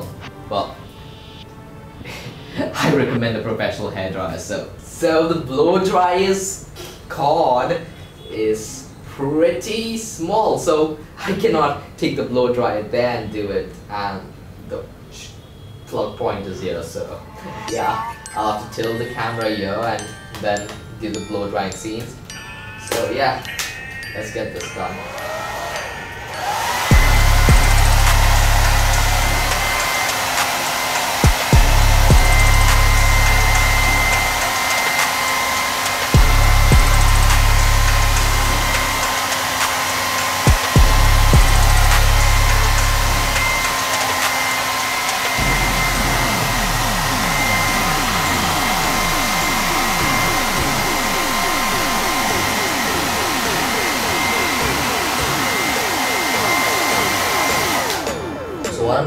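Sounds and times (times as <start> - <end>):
hair dryer blowing: 25.0 - 58.7
low rumble: 45.4 - 52.6.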